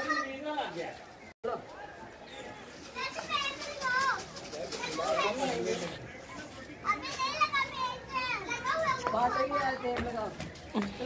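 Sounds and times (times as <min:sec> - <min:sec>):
children calling out and chattering: 0:00.0 - 0:00.8, 0:01.8 - 0:11.0.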